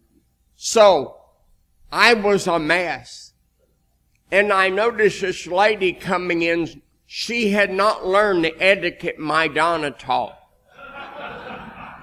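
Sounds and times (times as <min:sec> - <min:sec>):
man speaking: 0:00.6 - 0:01.3, 0:01.9 - 0:03.4, 0:04.3 - 0:10.4
people chuckling softly: 0:10.7 - 0:12.0.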